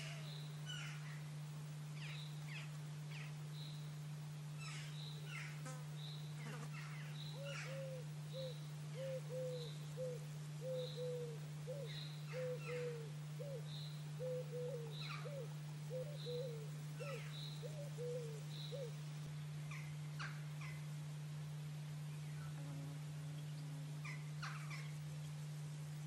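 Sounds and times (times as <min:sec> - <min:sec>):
low hooting bird call: 0:00.0 - 0:01.3, 0:06.7 - 0:19.0, 0:23.6 - 0:25.1
steady low hum: 0:00.0 - 0:26.0.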